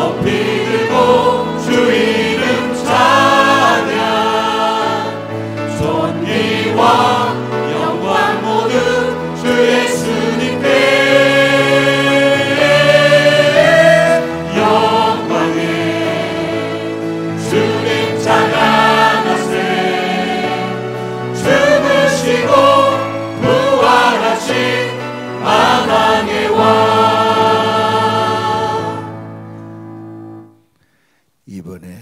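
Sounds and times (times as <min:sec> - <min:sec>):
choir singing worship song: 0:00.0 - 0:30.5
instrumental accompaniment: 0:00.0 - 0:30.8.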